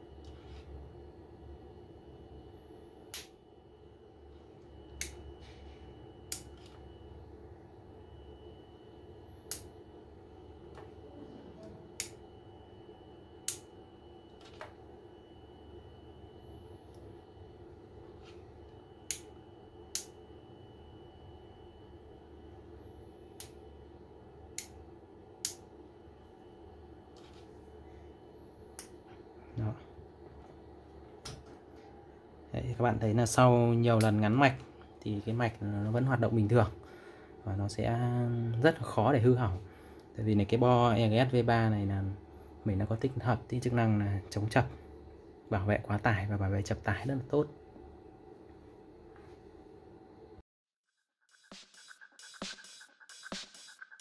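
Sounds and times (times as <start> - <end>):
steady low hum: 0.0 - 50.4
sharp electrical snaps: 3.1 - 3.4.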